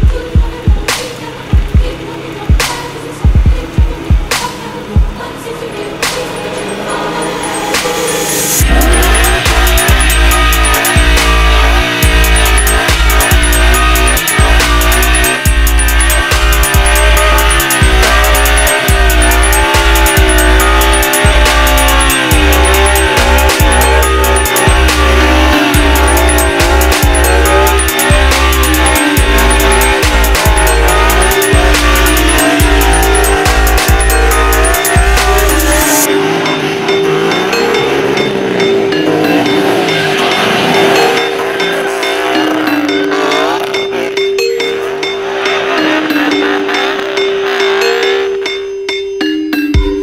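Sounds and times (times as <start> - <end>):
loud music with heavy beat: 0.0 - 5.2, 6.0 - 48.7
car engine revving: 0.0 - 48.7
tire squeal: 4.3 - 48.9.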